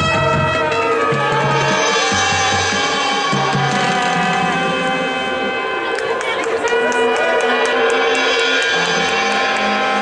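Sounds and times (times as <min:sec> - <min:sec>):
marching band brass chords: 0:00.0 - 0:10.0
voices: 0:00.6 - 0:10.0.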